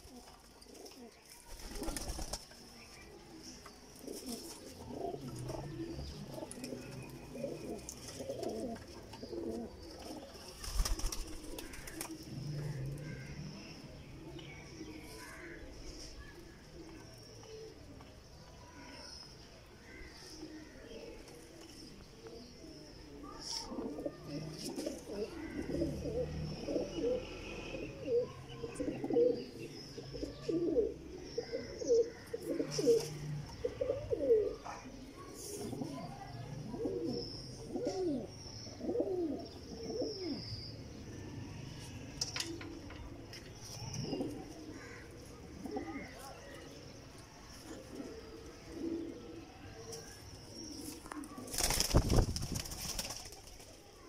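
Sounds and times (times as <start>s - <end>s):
pigeons cooing: 4.0s - 14.1s, 19.8s - 46.9s, 47.6s - 53.3s.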